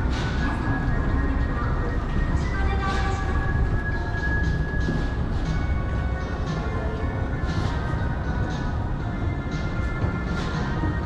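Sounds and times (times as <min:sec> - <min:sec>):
shop background music: 0:00.0 - 0:11.0.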